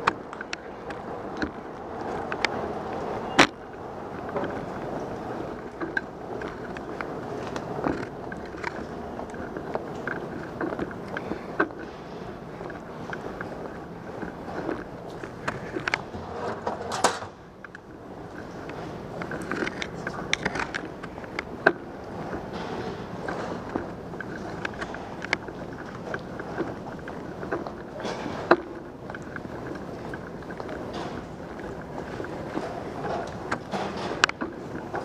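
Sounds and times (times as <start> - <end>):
bicycle clicking and rattling: 0.0 - 35.0
steady background hum: 0.0 - 35.0.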